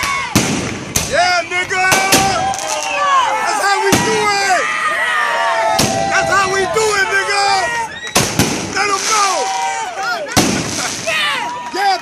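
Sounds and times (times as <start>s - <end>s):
firework bangs: 0.0s - 3.0s, 3.8s - 4.4s, 5.7s - 6.6s, 8.0s - 9.7s, 10.3s - 11.6s
people's voices: 0.0s - 12.0s.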